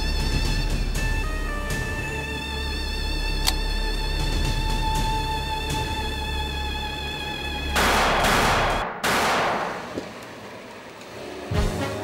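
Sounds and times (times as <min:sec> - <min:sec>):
pistol shot: 0:07.8 - 0:10.0.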